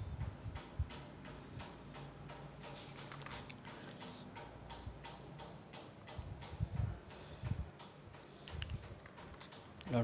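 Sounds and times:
faint regular ticking: 0.2s - 10.0s.

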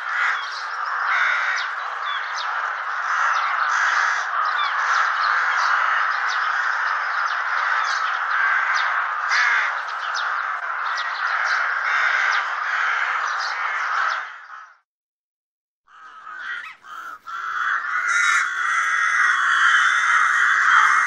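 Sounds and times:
rooks cawing: 0.0s - 14.8s, 15.9s - 21.0s
short higher bird calls: 16.0s - 21.0s.

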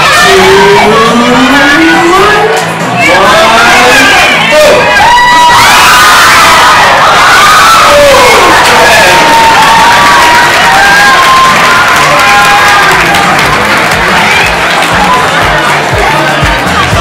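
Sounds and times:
crowd of women cheering and shrieking: 0.0s - 17.0s.

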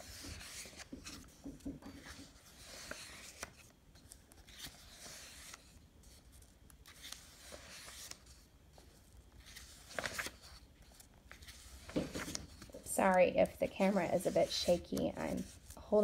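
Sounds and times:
paper pages being turned: 0.0s - 16.0s.

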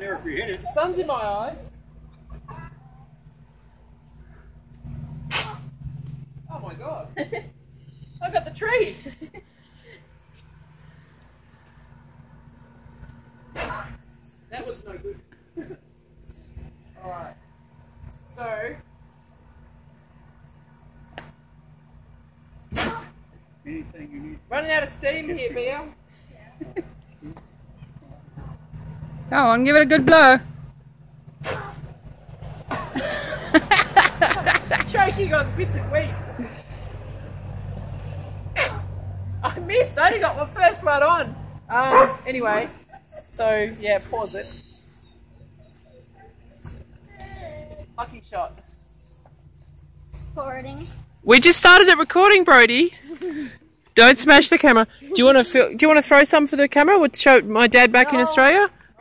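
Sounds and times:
person laughing: 32.7s - 35.1s, 53.0s - 53.6s.

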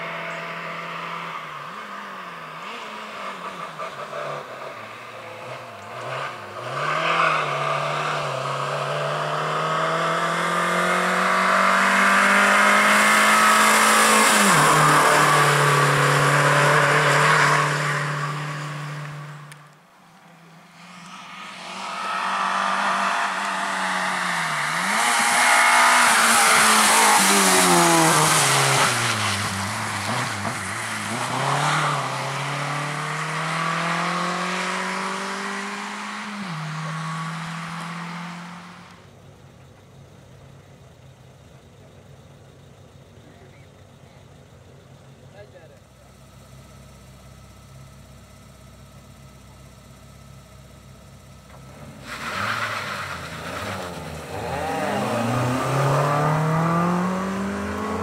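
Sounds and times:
rally car engine revving: 0.0s - 19.8s, 20.7s - 39.1s, 47.6s - 58.0s.

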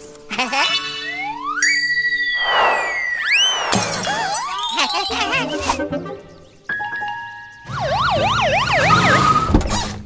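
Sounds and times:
background music: 0.0s - 8.6s
siren-like sweeping tone: 1.5s - 4.6s.

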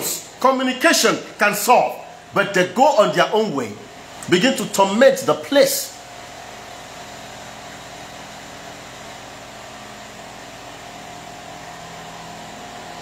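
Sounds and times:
room hum and hiss: 0.0s - 13.0s.

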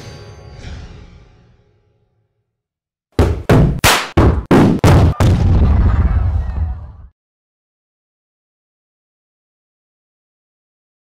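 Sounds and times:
loud thuds: 3.2s - 5.9s.

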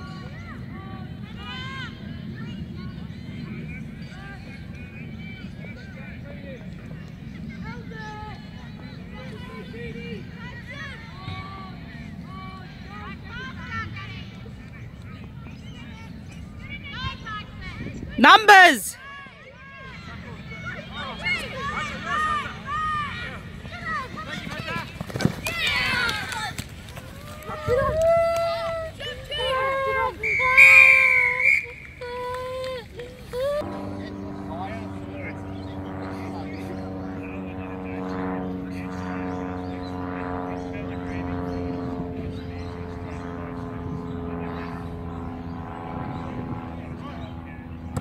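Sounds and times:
faint voices: 0.0s - 19.0s
long held shout: 18.2s - 19.0s
spectators shouting and cheering: 18.2s - 19.0s
engine drone: 33.3s - 48.0s.

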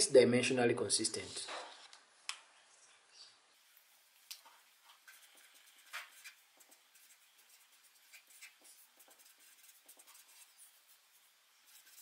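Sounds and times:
marker scratching on paper: 5.0s - 12.0s.

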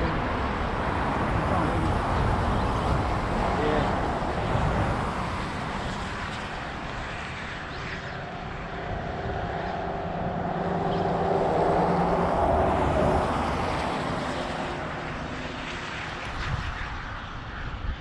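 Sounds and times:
engine drone passing by: 0.0s - 18.0s.

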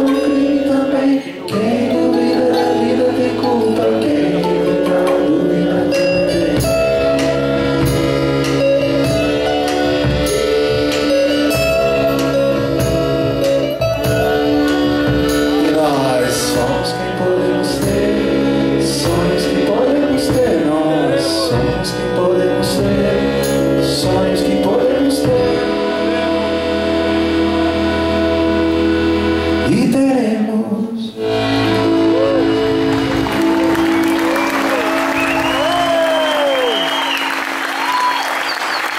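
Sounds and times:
accordion melody: 0.0s - 30.6s, 31.2s - 38.9s
acoustic-electric guitar: 0.0s - 38.9s
steady drum beat: 4.4s - 26.0s.

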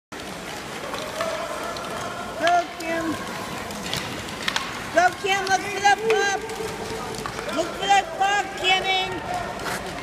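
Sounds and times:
rink background noise: 0.1s - 10.0s.

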